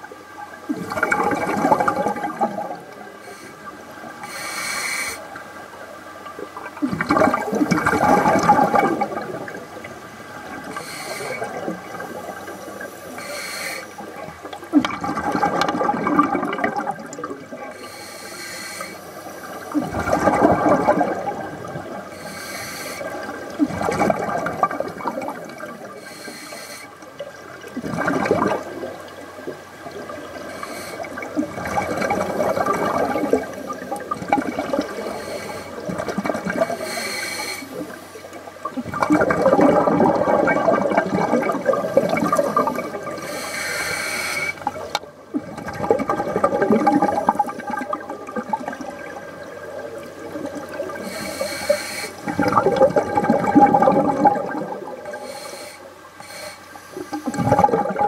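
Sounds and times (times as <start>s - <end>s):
bubbles gurgling underwater: 0.0s - 4.3s, 5.8s - 12.9s, 14.0s - 18.0s, 19.5s - 22.3s, 23.0s - 26.1s, 27.1s - 37.0s, 37.7s - 43.4s, 44.5s - 51.6s, 52.2s - 55.4s, 57.0s - 58.0s
regulator inhalation hiss: 3.2s - 5.3s, 10.7s - 11.5s, 12.2s - 14.1s, 17.8s - 19.8s, 22.1s - 23.2s, 26.0s - 27.0s, 30.5s - 31.2s, 34.9s - 35.8s, 36.6s - 38.3s, 42.4s - 44.6s, 51.0s - 52.3s, 55.2s - 57.4s.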